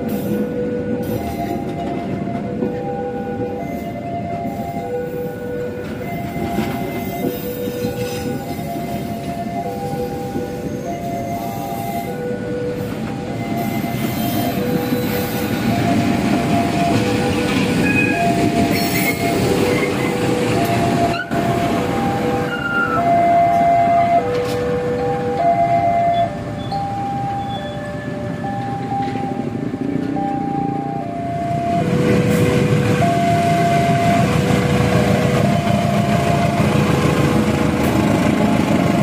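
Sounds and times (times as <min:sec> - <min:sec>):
locomotive engine rumble: 0:00.0 - 0:39.0.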